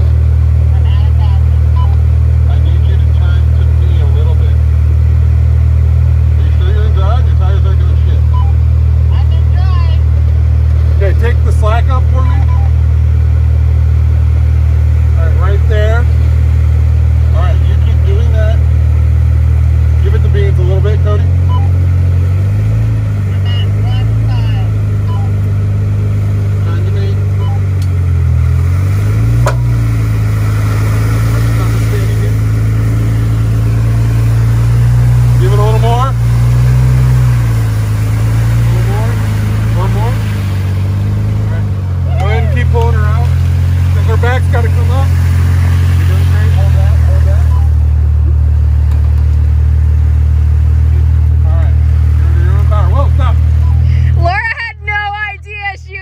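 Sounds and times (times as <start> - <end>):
engine running under load: 0.0 - 56.0
faint shouting voices: 42.0 - 42.9.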